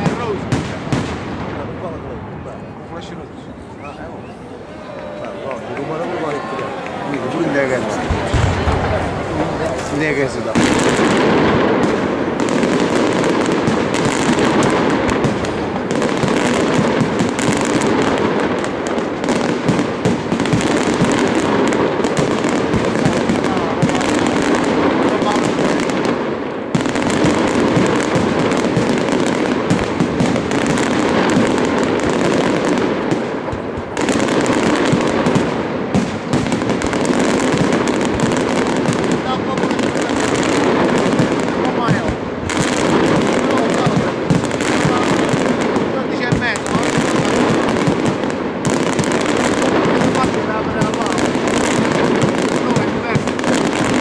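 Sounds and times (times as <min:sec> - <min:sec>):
firework crackling: 0:00.0 - 0:54.0
firework shells bursting: 0:05.6 - 0:54.0.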